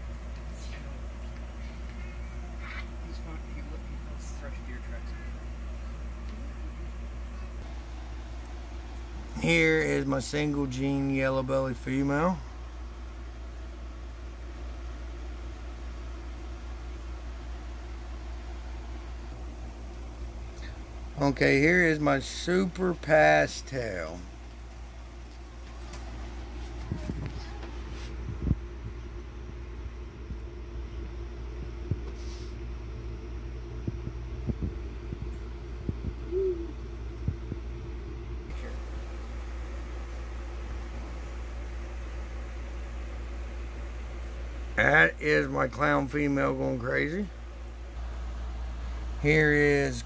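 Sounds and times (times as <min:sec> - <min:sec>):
low hum: 0:00.0 - 0:50.0
even hiss: 0:32.0 - 0:32.8.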